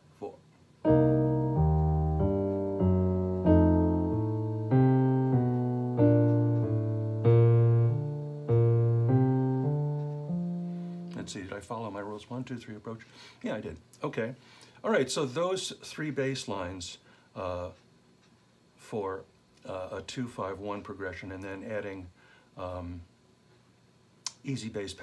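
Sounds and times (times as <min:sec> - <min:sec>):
jazz piano walking bass: 0:00.8 - 0:11.5
piano chord voicings: 0:00.8 - 0:11.8.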